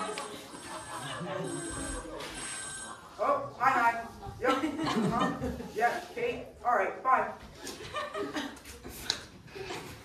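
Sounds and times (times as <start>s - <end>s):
telephone ringing: 0.0s - 3.6s.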